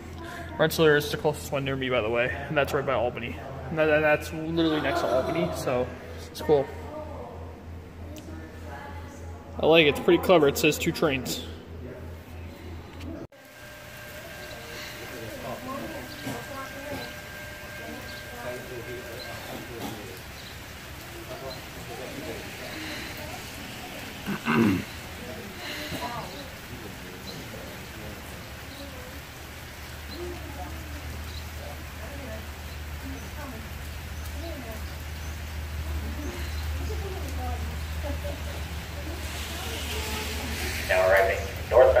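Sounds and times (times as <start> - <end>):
outdoor background noise: 0.0 - 42.0
faint indistinct voices: 3.2 - 42.0
hiss: 39.2 - 41.0.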